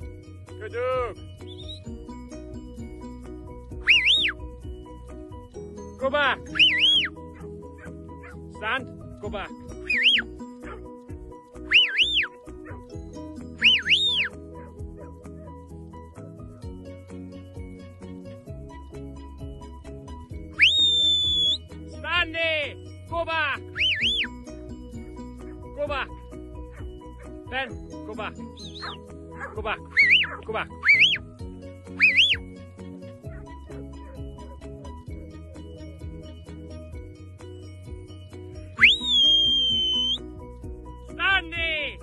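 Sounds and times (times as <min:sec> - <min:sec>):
background music: 0:00.0 - 0:42.0
shepherd's whistle: 0:01.4 - 0:02.0, 0:03.8 - 0:04.4, 0:06.5 - 0:07.2, 0:09.8 - 0:10.8, 0:11.6 - 0:12.5, 0:13.6 - 0:14.4, 0:20.5 - 0:21.7, 0:23.7 - 0:24.4, 0:28.6 - 0:29.0, 0:29.9 - 0:31.2, 0:32.0 - 0:32.4, 0:38.8 - 0:40.3.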